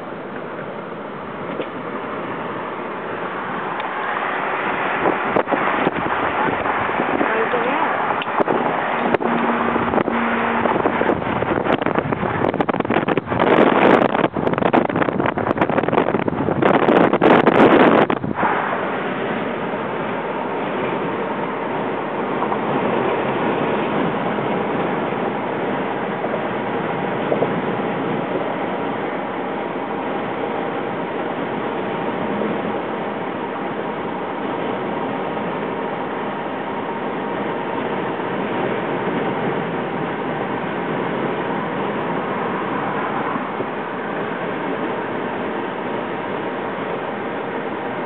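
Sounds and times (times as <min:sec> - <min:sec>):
car road and wind noise: 0:00.0 - 0:48.0.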